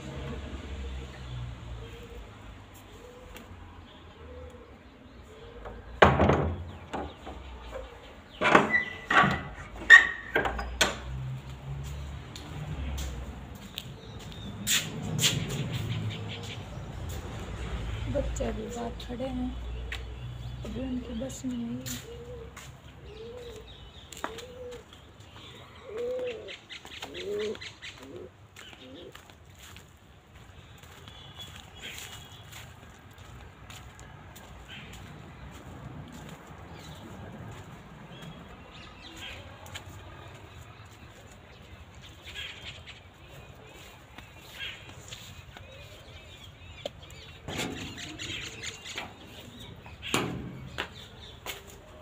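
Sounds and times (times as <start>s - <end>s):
dove cooing: 1.8s - 6.0s, 22.0s - 29.2s
metal door latch clanking: 8.4s - 11.0s.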